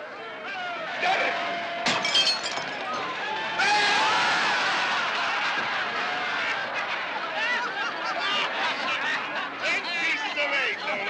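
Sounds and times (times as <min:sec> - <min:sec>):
crowd laughing and shouting: 0:00.4 - 0:11.0
glass breaking: 0:01.8 - 0:03.1.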